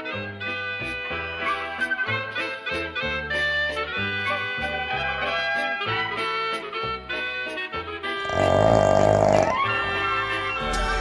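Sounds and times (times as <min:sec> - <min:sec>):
brass background music: 0:00.0 - 0:11.0
rough snoring: 0:08.2 - 0:10.4.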